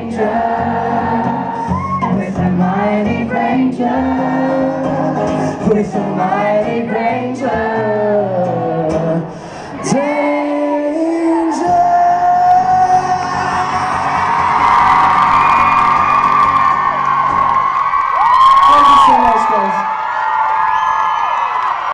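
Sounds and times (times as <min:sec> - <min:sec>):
audience screaming and whooping: 0:00.1 - 0:02.6, 0:09.7 - 0:21.9.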